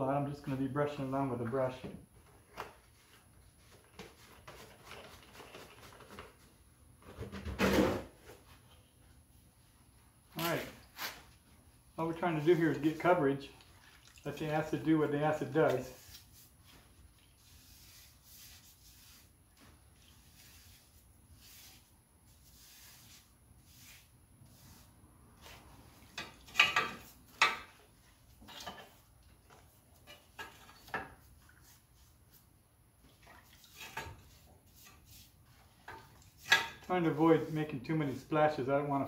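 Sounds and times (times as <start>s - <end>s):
brush and pipe tapping plastic tubs: 1.7s - 7.5s, 25.4s - 32.4s, 33.0s - 38.1s.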